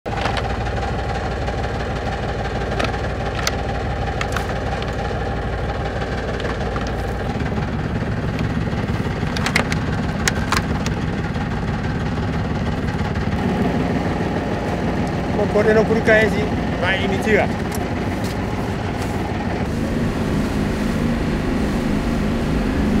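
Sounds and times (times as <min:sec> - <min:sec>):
boat engine idling: 0:00.1 - 0:23.0
sharp clicks and knocks: 0:02.6 - 0:05.1, 0:09.2 - 0:11.0.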